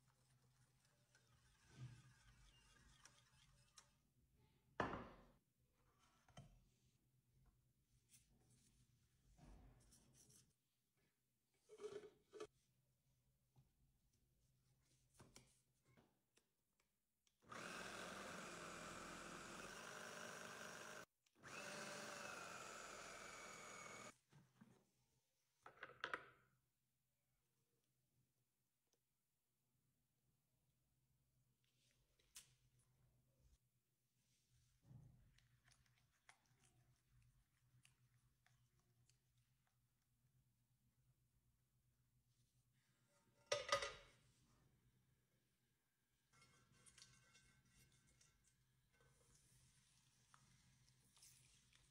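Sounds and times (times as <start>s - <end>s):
food processor motor whining: 17.4s - 24.2s.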